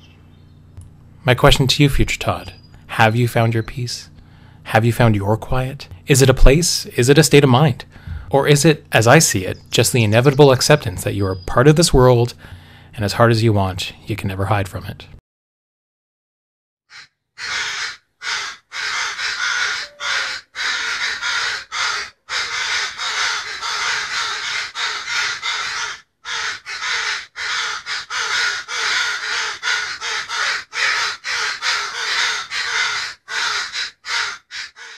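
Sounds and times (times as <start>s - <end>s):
crows cawing: 16.9s - 34.9s.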